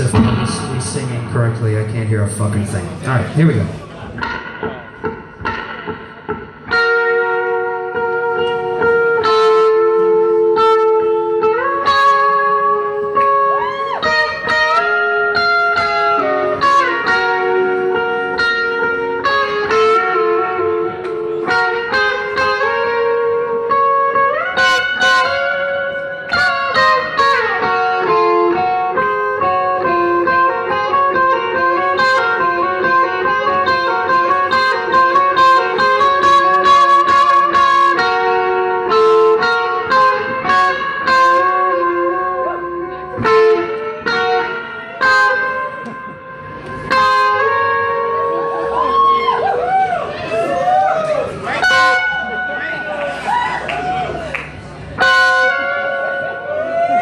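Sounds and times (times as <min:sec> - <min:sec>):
electric guitars ringing notes: 0:00.0 - 0:57.0.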